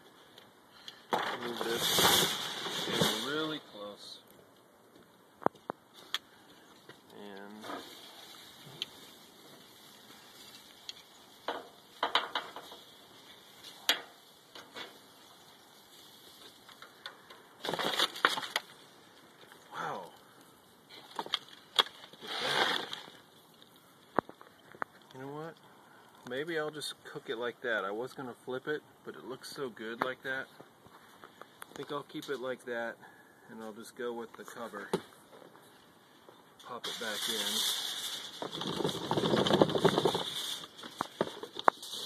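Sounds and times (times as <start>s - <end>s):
aluminium foil crinkling: 6.8s - 19.7s, 36.7s - 42.0s.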